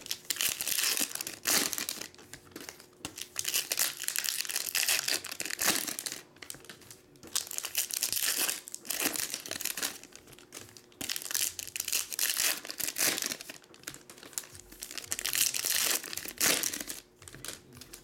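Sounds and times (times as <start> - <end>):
foil wrappers crinkling: 0.0 - 18.0.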